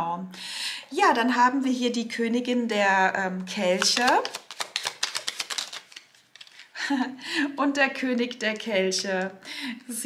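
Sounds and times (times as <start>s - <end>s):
cards shuffled by hand: 3.6s - 6.7s.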